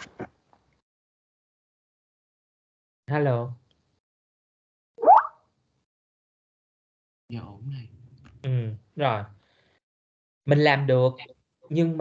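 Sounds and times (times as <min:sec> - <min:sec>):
short rising notification plop: 0:05.0 - 0:05.3.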